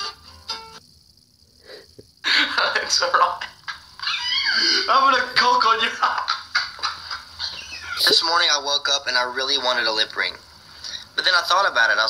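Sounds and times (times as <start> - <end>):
man laughing: 5.9 - 8.3.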